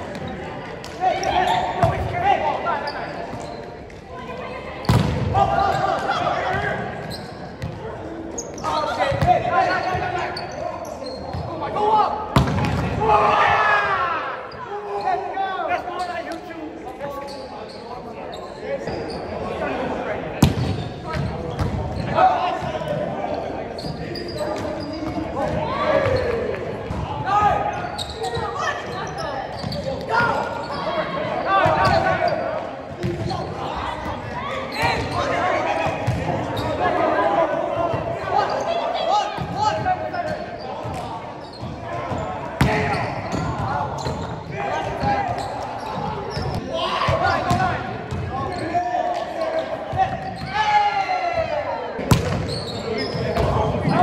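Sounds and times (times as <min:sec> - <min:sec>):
players shouting and chatter: 0:00.0 - 0:54.0.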